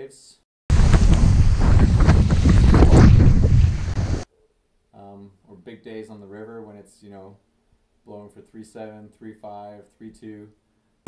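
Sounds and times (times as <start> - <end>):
water rushing and splashing: 0.7 - 4.2
wind blasting microphone: 0.7 - 4.2.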